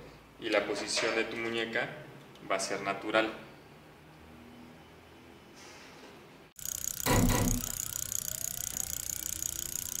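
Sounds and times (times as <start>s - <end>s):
rapid even ticking: 6.6s - 10.0s.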